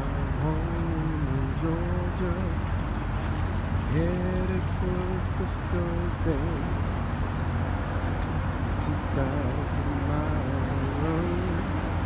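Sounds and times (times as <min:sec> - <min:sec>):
boat engine drone: 0:00.0 - 0:12.0
water noise: 0:00.0 - 0:12.0
wind: 0:00.0 - 0:12.0.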